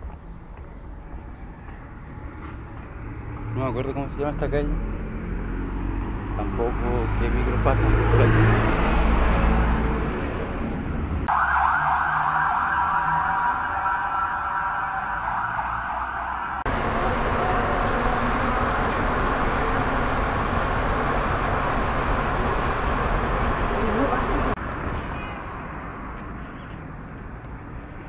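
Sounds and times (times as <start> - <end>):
subway train rumble and hiss: 16.7 - 24.6.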